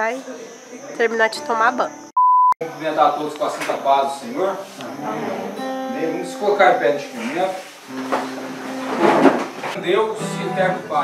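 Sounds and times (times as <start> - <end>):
acoustic guitar played softly: 4.6 - 11.0
people rising from plastic chairs: 7.2 - 9.8.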